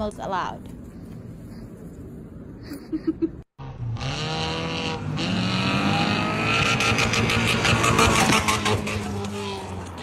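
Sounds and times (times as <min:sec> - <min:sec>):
car engine revving: 0:03.6 - 0:10.0.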